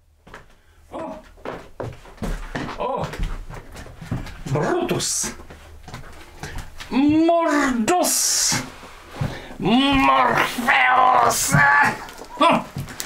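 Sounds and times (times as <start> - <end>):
indistinct voices: 9.6 - 12.7.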